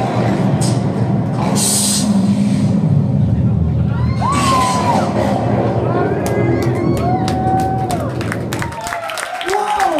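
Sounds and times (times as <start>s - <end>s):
distorted guitars and bass chord: 0.0s - 7.3s.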